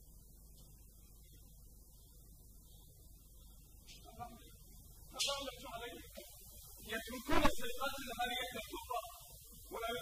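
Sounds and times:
faint low hum: 0:00.0 - 0:10.0
man speaking: 0:06.8 - 0:10.0.

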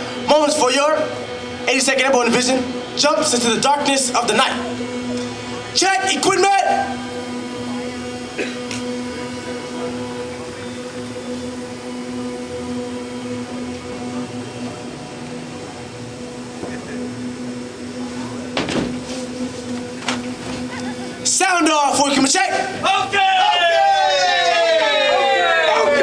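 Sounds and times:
mechanical drone humming: 0:00.0 - 0:26.0.

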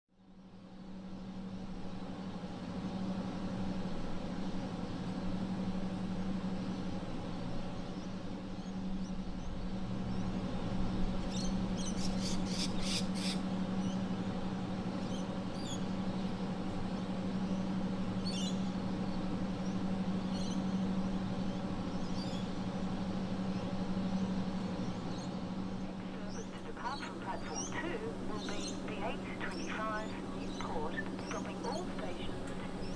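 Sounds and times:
electric train humming: 0:25.6 - 0:32.9
birds chirping: 0:25.8 - 0:32.9.

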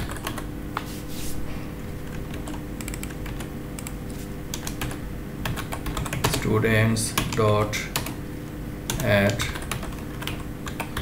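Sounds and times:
steady low hum: 0:00.0 - 0:11.0
keyboard typing clicks: 0:02.1 - 0:06.4, 0:08.9 - 0:11.0.

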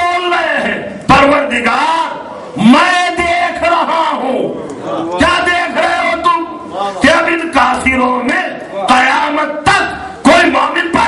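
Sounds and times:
loud raised voices calling out: 0:00.0 - 0:11.0
crowd voices: 0:04.4 - 0:07.5.

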